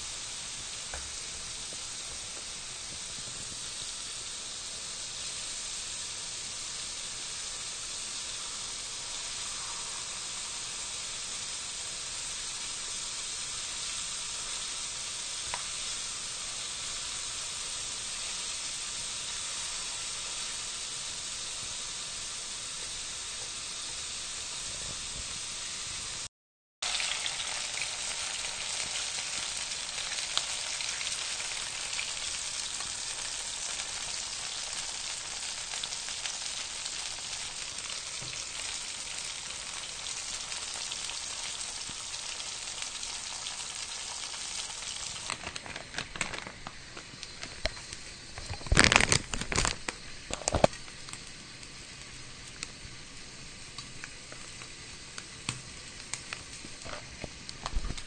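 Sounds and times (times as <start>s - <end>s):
chicken deep-frying in oil: 0.0s - 58.0s.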